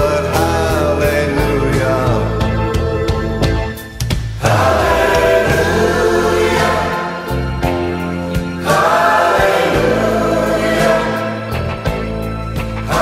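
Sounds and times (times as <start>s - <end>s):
choral singing on held notes: 1.2s - 11.9s.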